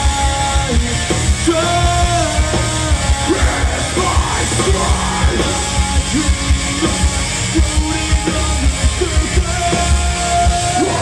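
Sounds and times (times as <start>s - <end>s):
hardcore band playing live: 0.0s - 11.0s
pounding drums: 0.0s - 11.0s
vocalist yelling: 3.3s - 5.6s.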